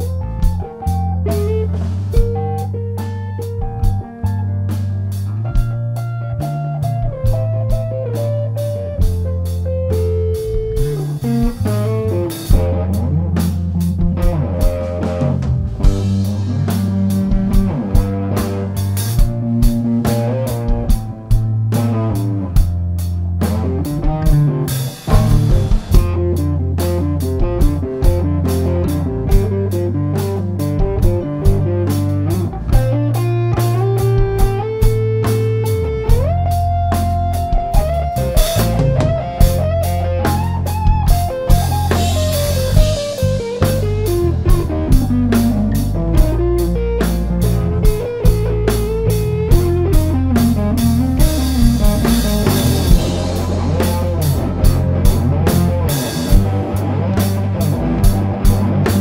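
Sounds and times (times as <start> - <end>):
bass guitar: 0.0 - 59.0
electric guitar lead: 0.0 - 59.0
steady drum beat: 0.0 - 59.0.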